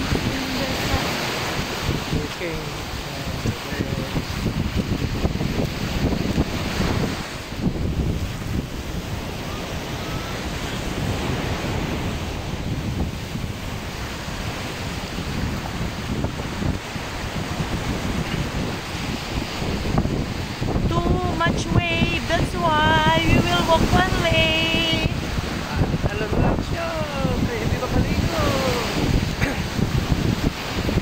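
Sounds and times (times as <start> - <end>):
ocean surf breaking: 0.0 - 31.0
wind buffeting microphone: 0.0 - 31.0.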